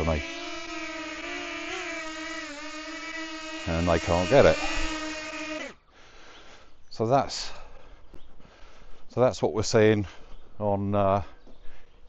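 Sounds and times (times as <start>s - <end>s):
drone propellers whining: 0.0s - 5.8s.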